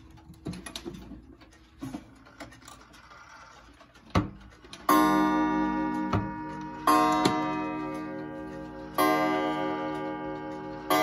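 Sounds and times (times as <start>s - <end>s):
pendulum clock ticking: 4.4s - 11.0s
clock gong striking: 4.9s - 11.0s.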